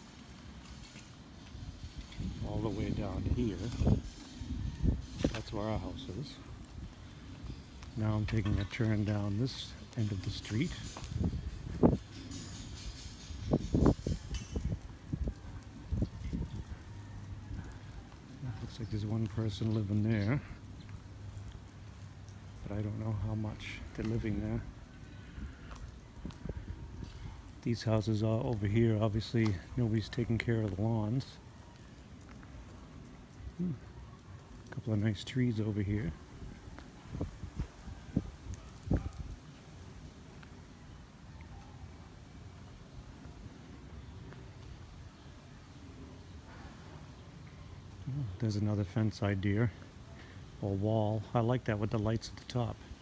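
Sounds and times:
wind rumbling on microphone: 0.0s - 49.9s
footsteps walking outdoors: 0.0s - 53.0s
leaves rustling: 0.0s - 53.0s
speech: 2.4s - 4.0s, 5.2s - 6.5s, 7.9s - 10.9s, 18.4s - 20.6s, 22.6s - 24.7s, 27.6s - 31.4s, 34.7s - 36.2s, 48.0s - 49.8s, 50.6s - 52.8s.

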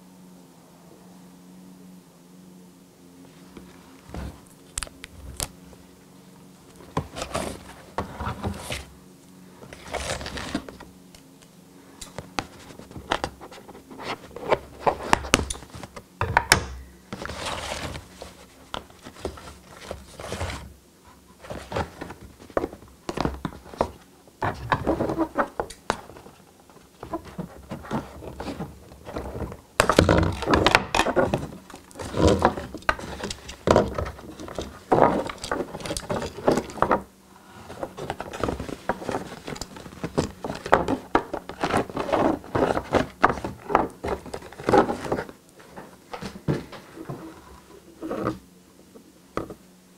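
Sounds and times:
faint steady hum: 0.0s - 49.9s
soft knocks scrapes and rustles: 3.3s - 4.5s, 6.7s - 8.9s, 12.2s - 16.0s, 17.1s - 48.4s.

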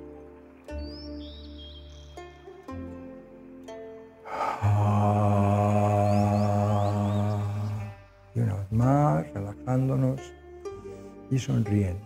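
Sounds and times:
plucked string notes: 0.0s - 12.0s
soft background music: 0.0s - 12.0s
man's low voiced aah: 4.3s - 8.0s.

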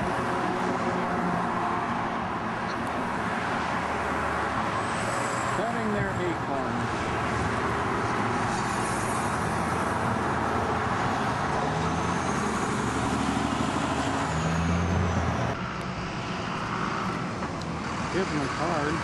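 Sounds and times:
road traffic passing: 0.0s - 19.0s
vehicle engine hum: 0.0s - 19.0s.

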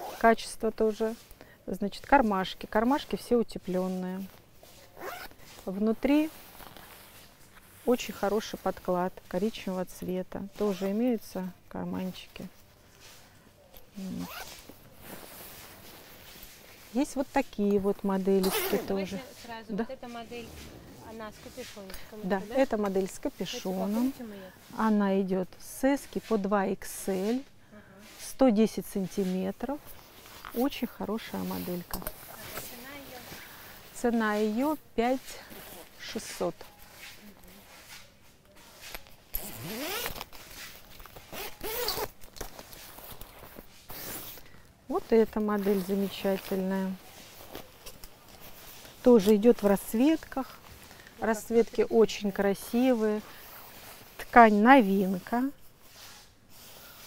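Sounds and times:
zipper being worked: 0.0s - 1.3s, 2.1s - 9.8s, 10.4s - 12.5s, 14.0s - 24.3s, 28.9s - 33.7s, 35.4s - 36.6s, 38.9s - 57.0s
nylon fabric rustling: 0.0s - 57.0s.

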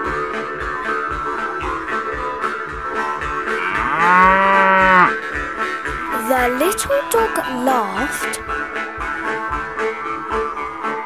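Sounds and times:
cow mooing: 3.6s - 5.1s.

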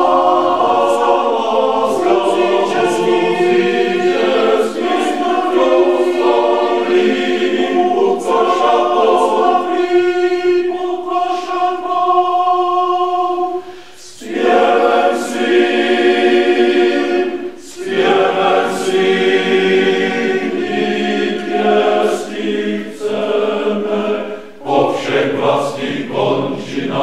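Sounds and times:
male choir singing unaccompanied: 0.0s - 27.0s.

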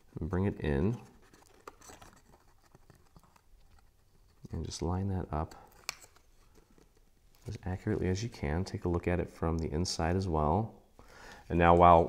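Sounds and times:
cardstock rustling and ticking: 0.1s - 9.6s.

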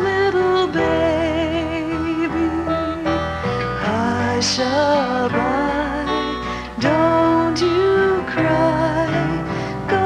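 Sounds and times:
slow lullaby music: 0.0s - 10.0s.

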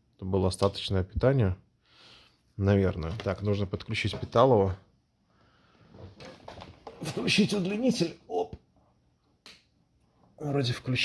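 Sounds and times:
soft handling knocks and rustles: 5.8s - 7.2s.

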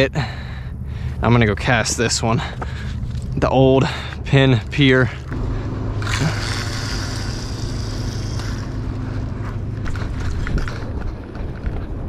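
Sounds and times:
low machine hum: 0.0s - 12.0s
hissing whir: 4.0s - 12.0s.

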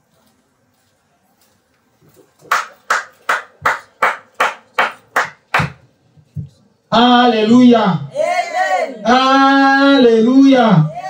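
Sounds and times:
rhythmic hand claps: 2.4s - 5.8s.

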